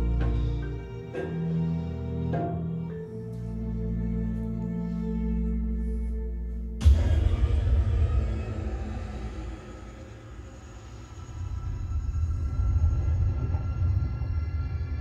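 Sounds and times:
faint sustained music: 0.0 - 15.0
loud hit: 6.8 - 12.4
deep heavy rumble: 6.8 - 15.0.

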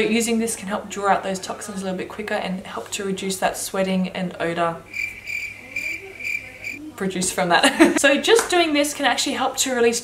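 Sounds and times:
insect trilling: 4.9 - 6.8.

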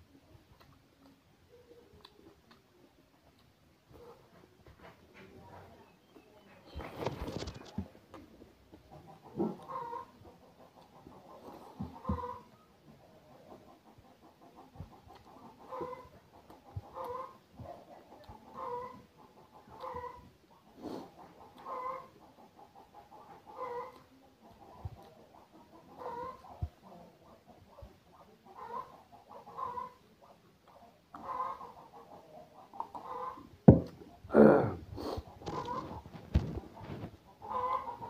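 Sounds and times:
close-up chewing: 0.5 - 27.4.

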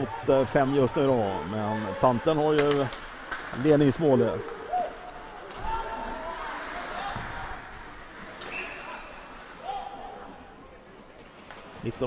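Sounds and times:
players shouting: 0.0 - 3.0, 3.7 - 10.6
puck and sticks knocking boards: 2.5 - 4.0.

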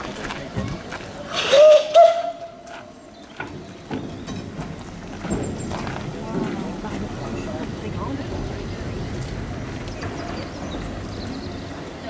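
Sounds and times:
crowd murmuring: 0.0 - 3.1, 4.5 - 12.0
ironwork squeaks and clanks: 1.3 - 11.9.

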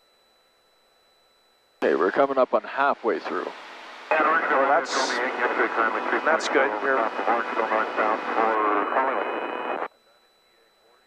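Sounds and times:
talk over aircraft radio: 1.8 - 3.5, 4.1 - 11.0.

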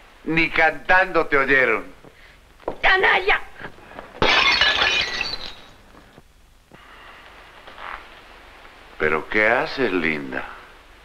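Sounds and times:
glass shards ringing and tinkling: 4.2 - 5.8.

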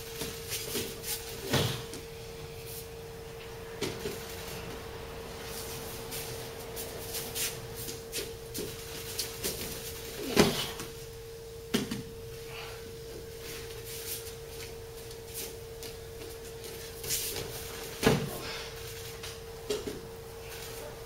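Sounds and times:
faint steady hum: 0.0 - 21.0
body thump on padded mat: 0.7 - 2.0, 10.2 - 10.8, 17.9 - 18.4.

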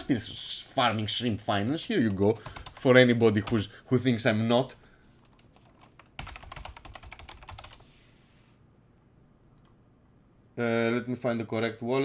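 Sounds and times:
typing on computer keyboard: 2.1 - 3.6, 5.2 - 7.8.

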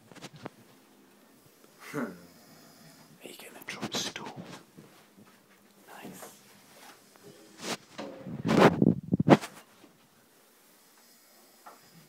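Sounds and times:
person whispering: 3.2 - 4.7, 5.8 - 6.4.

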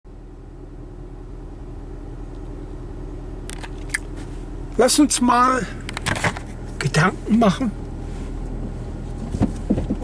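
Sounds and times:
car engine hum inside cabin: 0.1 - 10.0.

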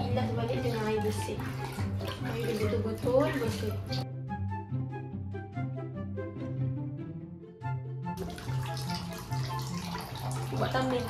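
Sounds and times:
water running: 0.0 - 4.0, 8.2 - 11.0.

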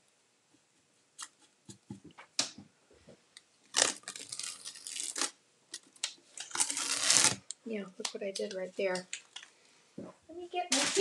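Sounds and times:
tape ripping off wood: 3.7 - 7.5.

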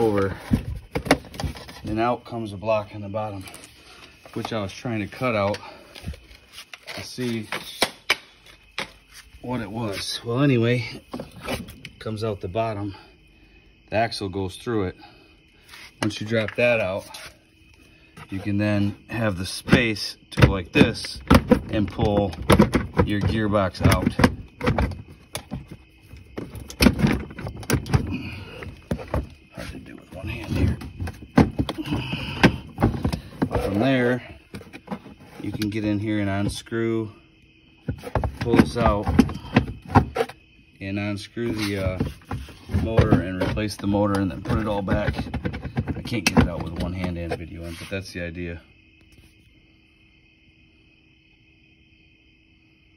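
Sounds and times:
crickets trilling: 0.0 - 52.9.

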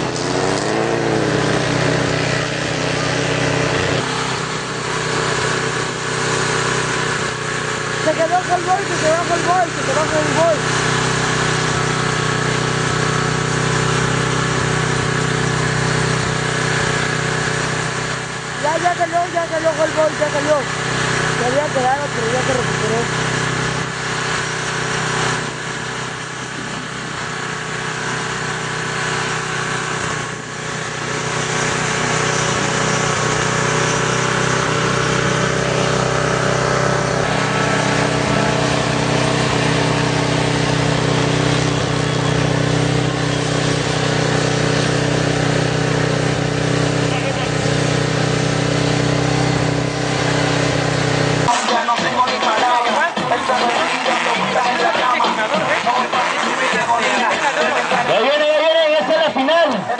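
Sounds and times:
off-road vehicle engines running: 0.0 - 59.9
people's voices: 51.5 - 59.9.

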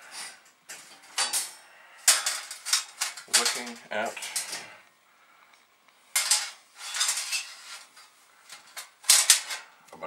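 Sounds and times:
sheet metal clattering and clinking: 0.7 - 4.7, 6.2 - 9.7.

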